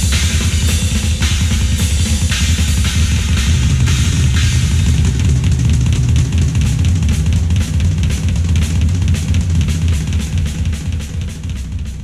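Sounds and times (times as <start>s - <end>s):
bass drum strokes: 0.0s - 12.0s
snare and cymbal hits: 0.0s - 12.0s.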